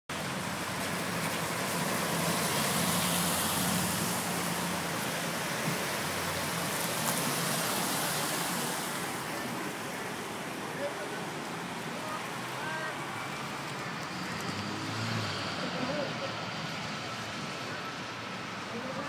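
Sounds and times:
traffic on a wet road: 0:00.1 - 0:19.0.

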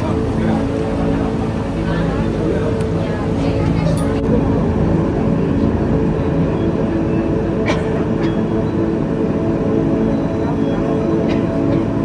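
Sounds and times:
railway car mechanical hum: 0:00.0 - 0:12.0.

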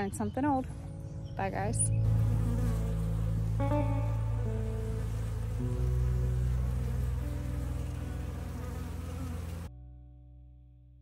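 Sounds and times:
honeybees buzzing: 0:01.3 - 0:09.7.

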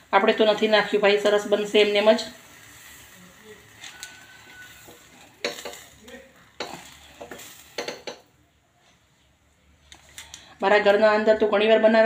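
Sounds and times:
skin sizzling and popping: 0:00.0 - 0:08.3
knock on burner grate: 0:06.6 - 0:08.3.

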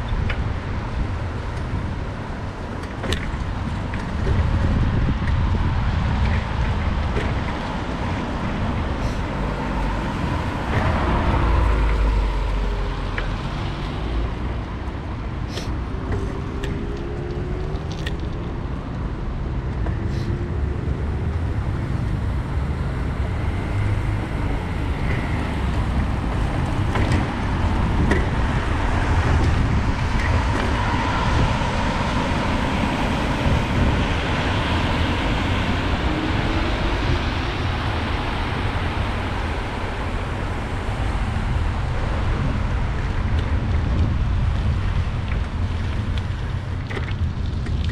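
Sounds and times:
cars passing: 0:00.0 - 0:47.9
wind and road noise: 0:00.0 - 0:47.9.

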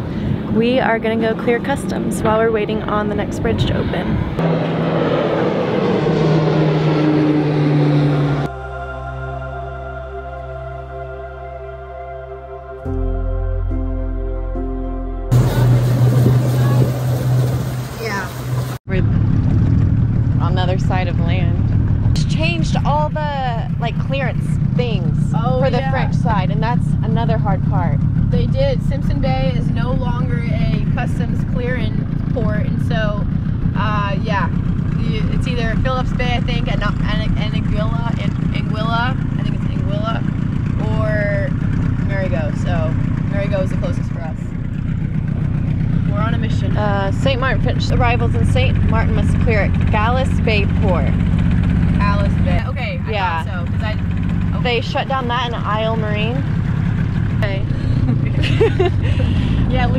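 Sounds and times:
boat engine drone: 0:00.0 - 0:59.9
people talking indistinctly: 0:00.5 - 0:04.2, 0:20.4 - 0:44.6, 0:45.7 - 0:51.2, 0:52.0 - 0:56.6, 0:57.4 - 0:59.9
music: 0:08.5 - 0:17.1.

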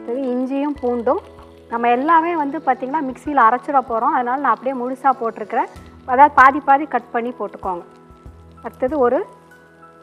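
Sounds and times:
woman speaking: 0:00.0 - 0:07.9, 0:08.6 - 0:09.3
faint background music: 0:00.0 - 0:10.0
spices sizzling in butter: 0:00.0 - 0:10.0.

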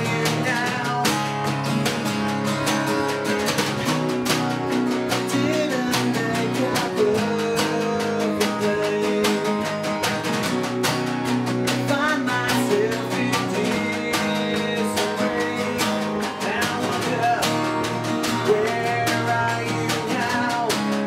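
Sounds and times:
man singing: 0:00.0 - 0:03.6, 0:04.6 - 0:10.5, 0:11.5 - 0:21.0
acoustic guitars strumming: 0:00.0 - 0:21.0.

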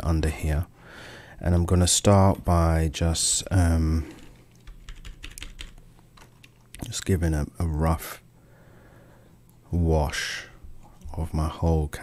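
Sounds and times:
computer keyboard clicks: 0:04.2 - 0:07.0.

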